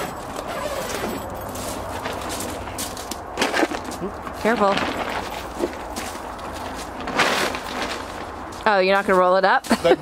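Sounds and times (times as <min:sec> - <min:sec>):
vinyl tarp rustling: 0:00.0 - 0:09.3.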